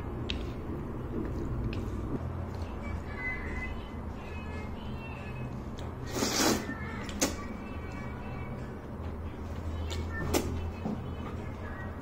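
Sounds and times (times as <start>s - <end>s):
noodles being slurped: 6.0s - 6.7s.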